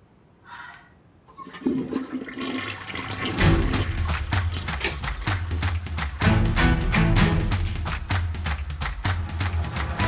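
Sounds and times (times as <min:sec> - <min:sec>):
toilet flushing: 0:01.3 - 0:05.0.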